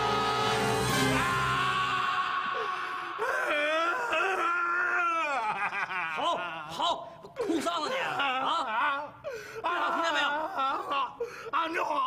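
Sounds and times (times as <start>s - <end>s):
man howling and wailing: 0.0s - 6.9s.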